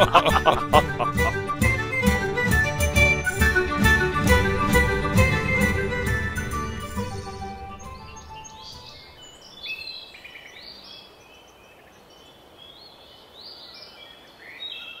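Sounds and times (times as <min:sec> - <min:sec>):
closing music: 0:00.0 - 0:09.2
birds chirping: 0:05.4 - 0:15.0.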